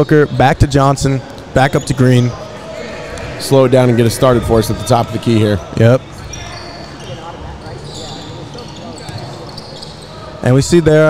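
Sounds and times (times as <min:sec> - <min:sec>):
sneaker squeaks: 0:05.6 - 0:10.8.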